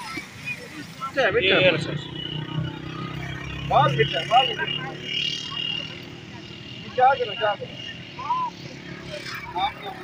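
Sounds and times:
people talking: 0:00.0 - 0:10.0
vehicle engine humming: 0:00.0 - 0:10.0.

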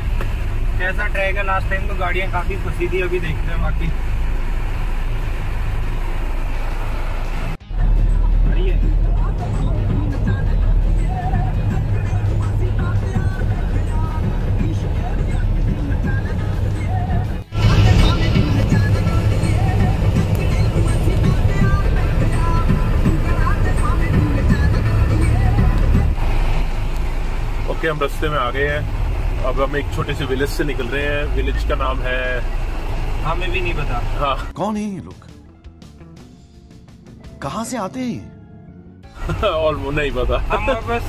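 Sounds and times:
car driving drone: 0:00.0 - 0:34.5, 0:39.0 - 0:41.0
background music: 0:07.6 - 0:26.4, 0:34.2 - 0:41.0.

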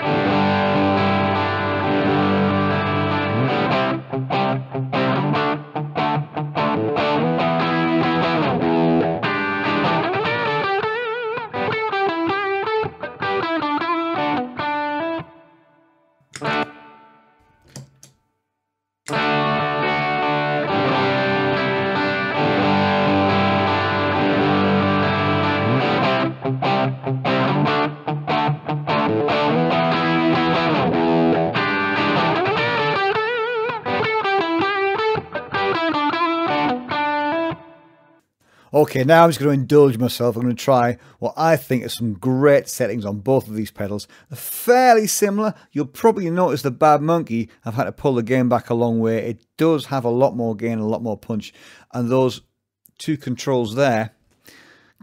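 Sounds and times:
overdriven electric guitar: 0:00.0 - 0:18.1, 0:19.1 - 0:38.2.

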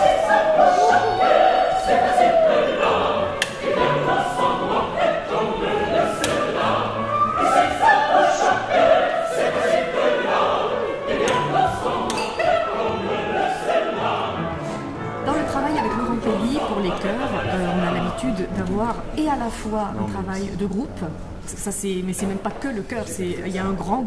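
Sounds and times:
opera chorus singing: 0:00.0 - 0:24.0.

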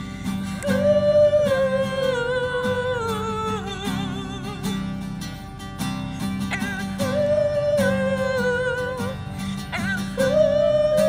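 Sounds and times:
man singing long notes: 0:00.0 - 0:04.9, 0:06.5 - 0:11.0
acoustic guitar: 0:00.0 - 0:11.0.

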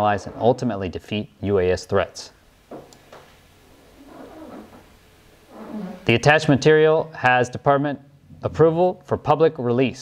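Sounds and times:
man speaking: 0:00.0 - 0:02.4, 0:06.0 - 0:10.0.

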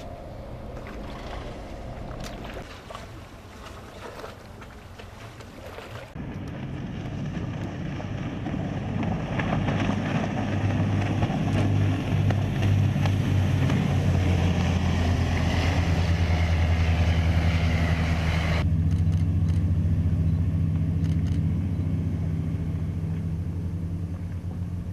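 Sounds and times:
rushing water: 0:00.0 - 0:18.7
boat engine running: 0:00.0 - 0:24.9.

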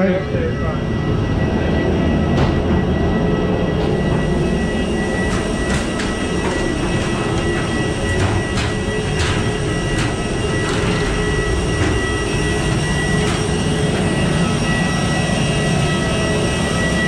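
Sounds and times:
high whine: 0:00.0 - 0:17.0
sharp clicks and rattles: 0:03.8 - 0:14.3.

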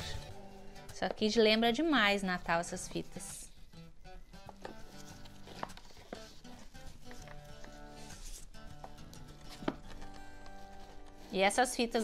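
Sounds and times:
soft background music: 0:00.0 - 0:12.0
cellophane wrapping rustling: 0:04.4 - 0:12.0.

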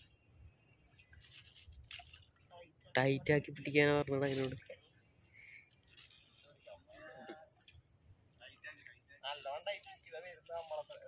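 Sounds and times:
crickets droning: 0:00.0 - 0:11.0.

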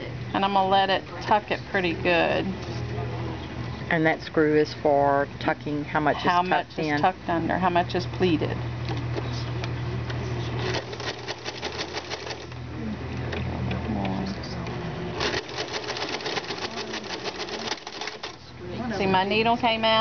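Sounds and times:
sewing machine motor hum: 0:10.4 - 0:13.6, 0:15.1 - 0:18.6
ruffler foot clicking rapidly: 0:15.2 - 0:18.4.

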